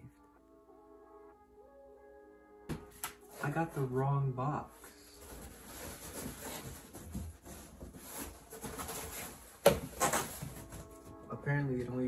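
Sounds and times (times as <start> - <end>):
cardboard scraping and rustling: 5.2 - 11.2.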